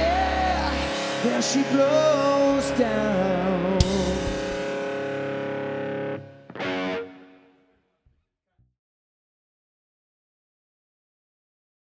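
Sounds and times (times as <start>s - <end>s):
distorted electric guitar chords: 0.0s - 7.9s.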